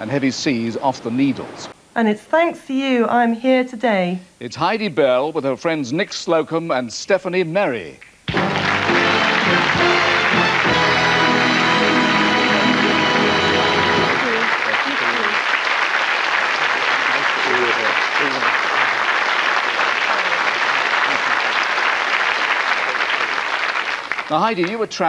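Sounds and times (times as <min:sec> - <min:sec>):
brass band music sting: 0:08.3 - 0:14.7
audience applauding: 0:08.3 - 0:25.0.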